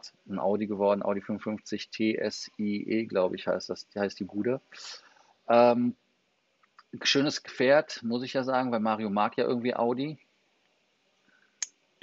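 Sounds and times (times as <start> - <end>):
man speaking: 0.0 - 6.0, 6.9 - 10.2.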